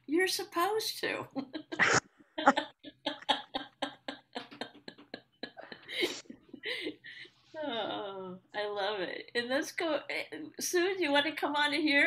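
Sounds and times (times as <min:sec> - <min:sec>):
woman laughing breathily: 0:01.7 - 0:07.4.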